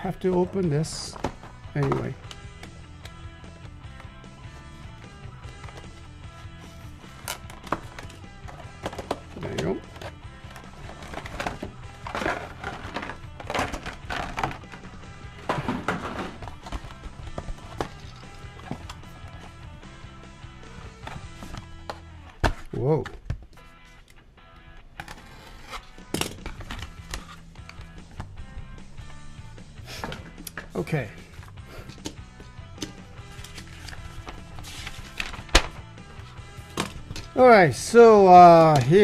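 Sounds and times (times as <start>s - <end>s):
quiet background music: 0.0s - 39.0s.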